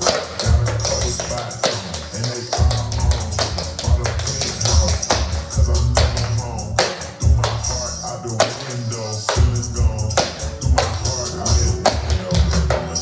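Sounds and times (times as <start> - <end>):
hip-hop track with booming bass: 0.0 - 13.0.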